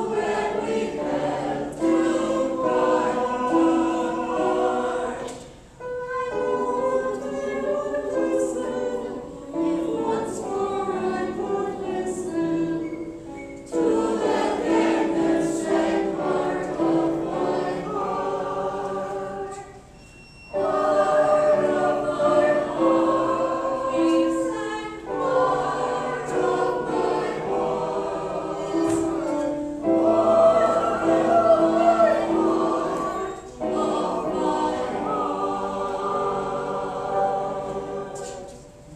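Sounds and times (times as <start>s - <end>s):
mixed choir singing: 0.0s - 38.9s.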